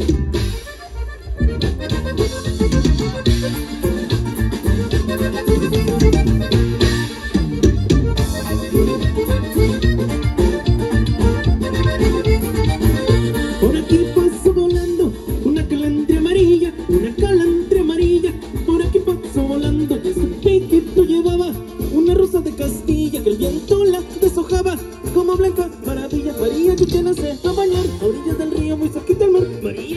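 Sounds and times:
accordion melody: 0.0s - 29.9s
guitar: 0.0s - 29.9s
steady bass beat: 0.0s - 29.9s.

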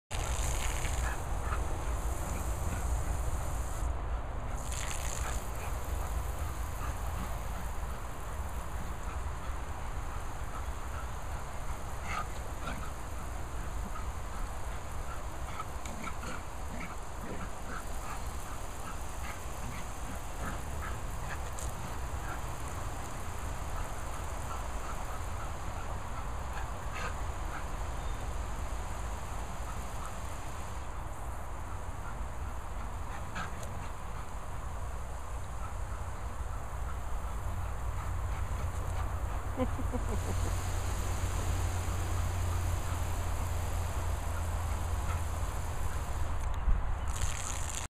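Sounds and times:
hose spraying water: 0.1s - 3.9s, 4.5s - 46.5s, 47.1s - 47.9s.

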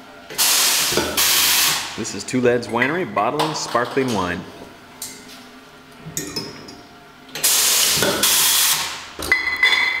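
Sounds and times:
bottling equipment hissing: 7.4s - 8.9s
glass bottles clinking: 9.2s - 10.0s.

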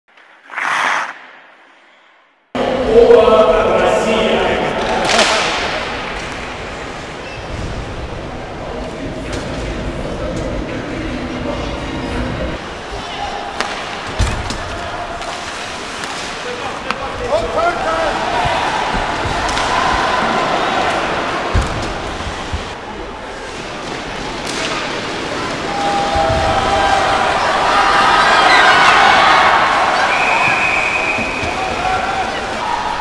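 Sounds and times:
arena crowd noise: 2.6s - 33.0s.

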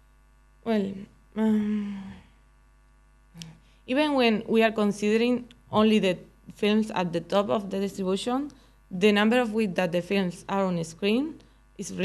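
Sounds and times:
electrical mains hum: 0.0s - 12.0s
woman speaking: 0.7s - 2.0s, 3.4s - 12.0s
faint vocal sound: 1.4s - 2.4s.

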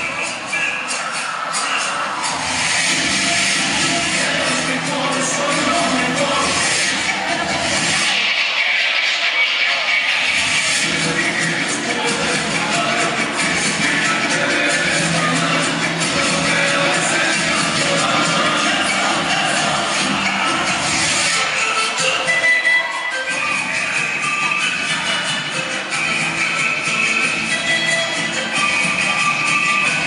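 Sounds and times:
dance music with percussion beat: 0.0s - 30.0s.

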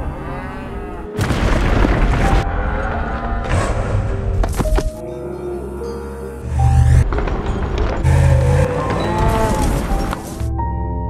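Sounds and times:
cattle lowing: 8.0s - 10.2s.

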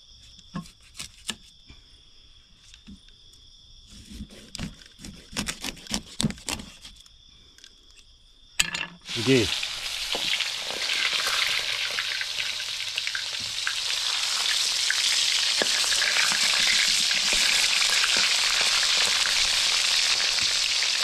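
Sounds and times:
fish sizzling in hot oil: 9.0s - 21.0s.

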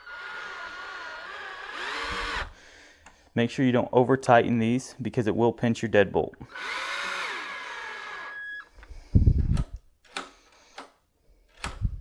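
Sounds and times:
battery drill motor whine: 0.0s - 2.6s, 6.5s - 8.7s.

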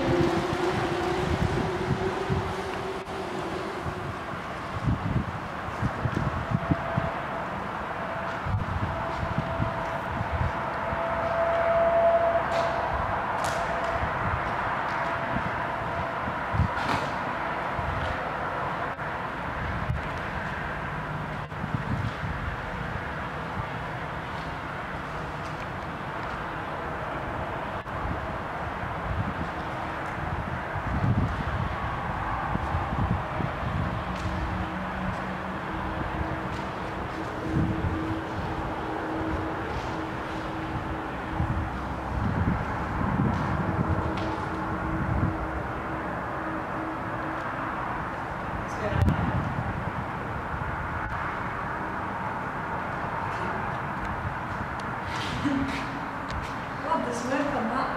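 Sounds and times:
low tunnel rumble: 0.0s - 57.9s
wind buffeting microphone: 0.0s - 57.9s.

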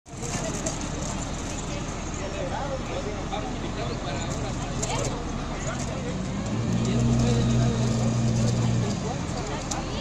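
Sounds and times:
people talking: 0.1s - 10.0s
truck engine running: 0.1s - 10.0s.

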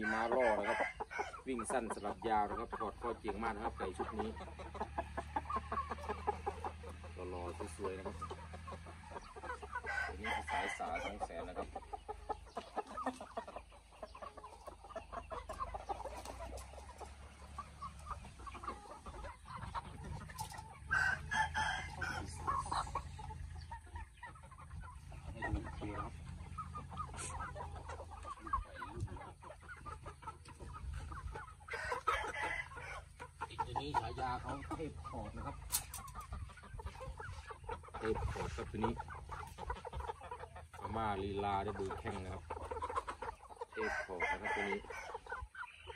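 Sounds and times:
chickens clucking: 0.0s - 45.9s.

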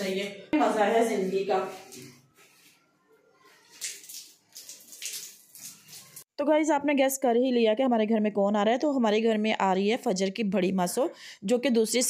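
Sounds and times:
water running from tap: 3.6s - 6.3s
water splashing on hands: 3.6s - 6.3s.

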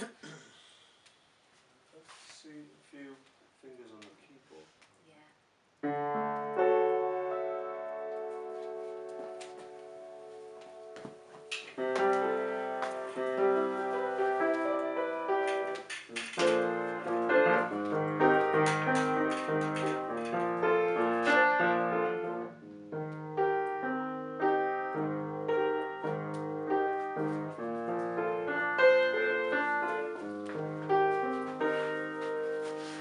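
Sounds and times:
upright piano playing: 5.8s - 33.0s.

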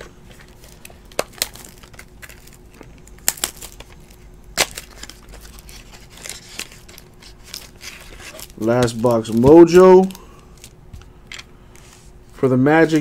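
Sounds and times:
plastic wrapper crinkling: 0.0s - 11.5s.

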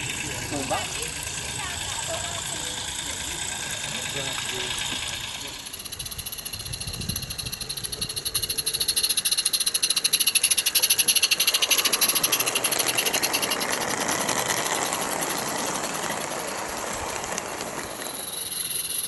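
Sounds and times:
steam locomotive exhaust beats: 0.0s - 19.0s.

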